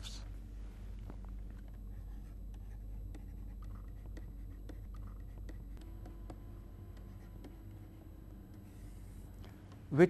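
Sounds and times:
low steady hum: 0.0 - 10.0
stylus tapping and scratching: 1.6 - 8.7.

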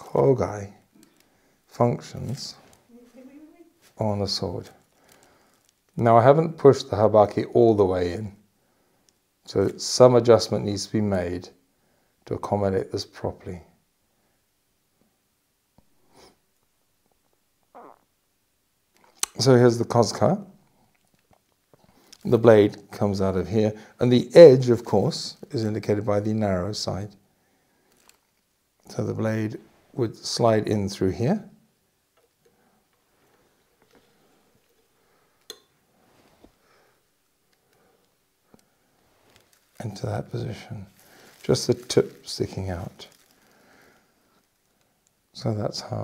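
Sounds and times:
faint handling noise: 0.8 - 6.0, 27.8 - 30.0, 32.1 - 45.3
man breathing softly: 4.9 - 5.7, 43.2 - 44.4.

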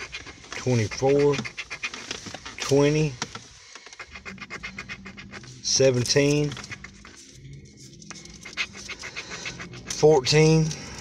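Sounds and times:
coin scraping scratch card: 0.0 - 3.2, 4.0 - 11.0.

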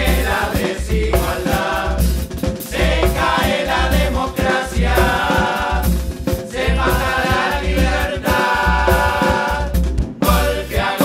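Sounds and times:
chorus singing together: 0.0 - 11.0
low drum beat: 0.0 - 11.0.

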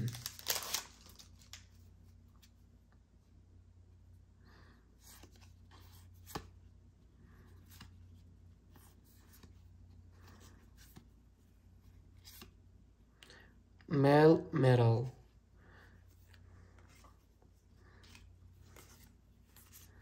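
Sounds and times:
trading cards being flipped: 12.0 - 12.6, 18.0 - 20.0.

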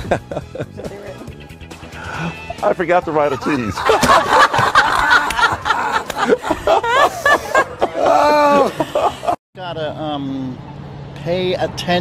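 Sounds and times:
men laughing loudly: 0.0 - 1.2, 2.0 - 9.4.

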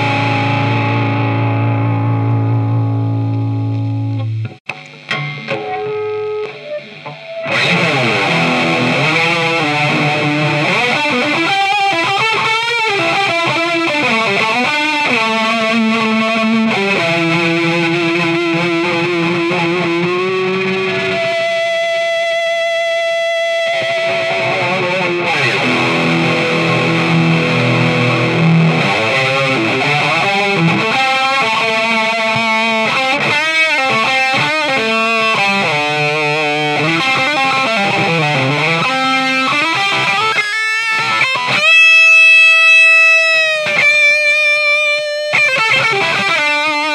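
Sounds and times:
distorted electric guitar lead: 0.0 - 46.9.

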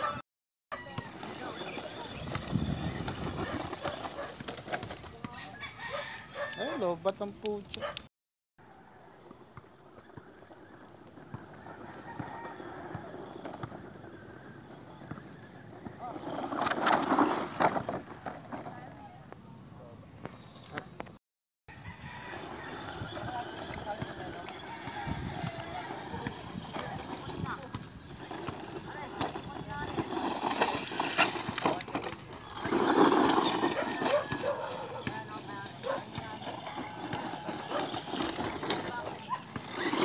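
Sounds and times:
toy truck tumbling on dirt: 0.8 - 5.3, 10.6 - 19.2, 21.7 - 40.0
onlookers' voices: 22.4 - 40.0.

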